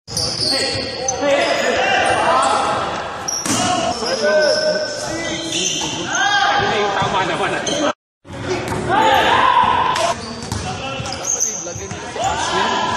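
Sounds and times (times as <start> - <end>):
sneakers squeaking: 0.1 - 12.9.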